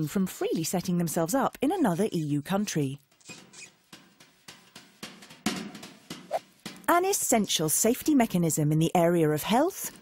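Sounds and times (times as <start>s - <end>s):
marker pen squeaking on whiteboard: 3.2s - 3.8s.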